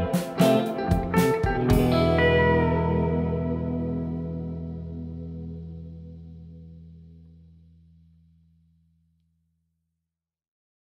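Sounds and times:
ringing guitar chord: 0.0 - 7.4.

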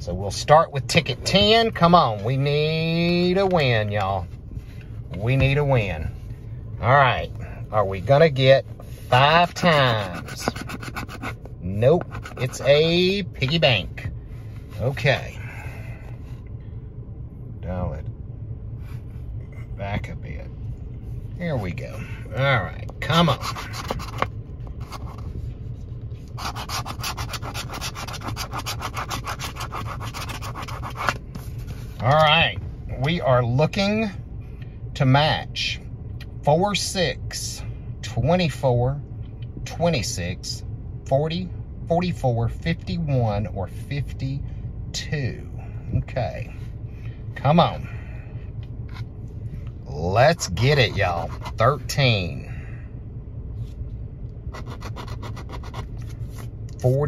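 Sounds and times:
low steady rumble: 0.0 - 57.0
coin scratching lottery ticket: 9.1 - 12.7, 23.1 - 25.2, 26.3 - 31.2, 50.4 - 51.7, 54.5 - 56.0.

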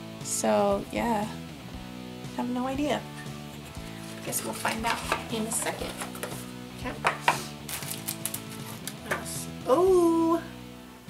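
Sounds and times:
packaging clicking and crackling: 7.7 - 9.0.

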